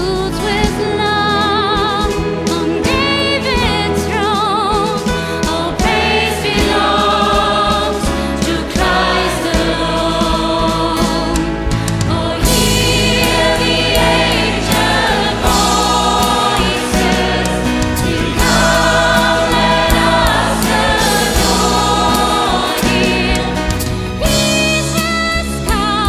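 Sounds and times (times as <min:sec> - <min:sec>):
band with guitars keyboard drums: 0:00.0 - 0:26.0
choir singing in harmony: 0:01.0 - 0:25.0.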